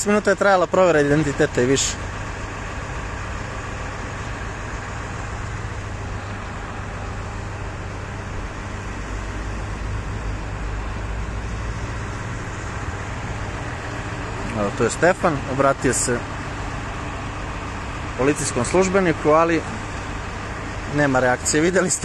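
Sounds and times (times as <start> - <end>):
car engines idling: 0.0 - 22.0
street traffic noise: 0.0 - 22.0.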